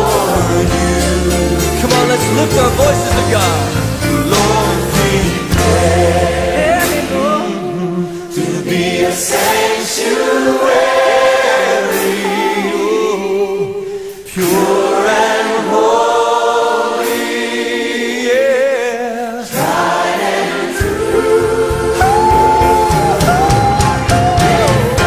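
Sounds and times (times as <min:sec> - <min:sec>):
choir singing a cappella: 0:00.0 - 0:25.0.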